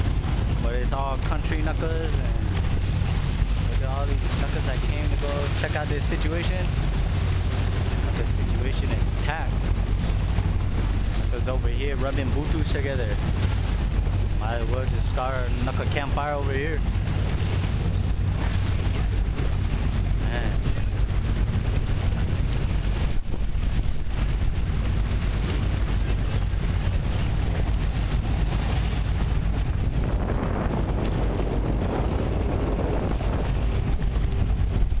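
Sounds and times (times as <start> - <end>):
boat engine rumble: 0.0 - 35.0
wind buffeting microphone: 0.0 - 35.0.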